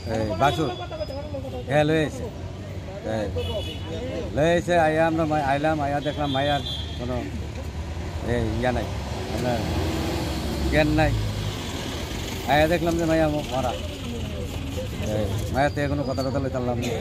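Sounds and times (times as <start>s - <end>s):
man speaking: 0.0s - 7.4s.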